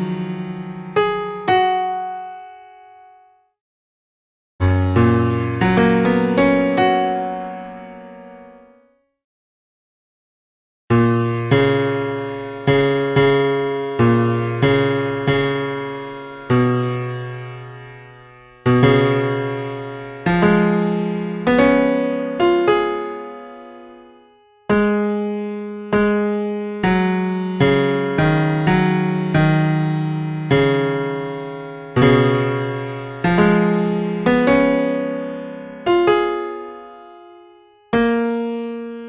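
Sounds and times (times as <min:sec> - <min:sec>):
digital piano playing a hymn: 0:00.0 - 0:03.3, 0:04.6 - 0:08.9, 0:10.9 - 0:39.0.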